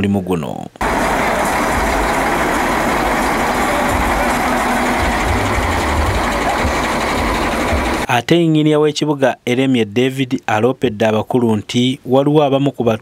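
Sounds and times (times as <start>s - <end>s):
diesel engine running: 0.8s - 8.1s.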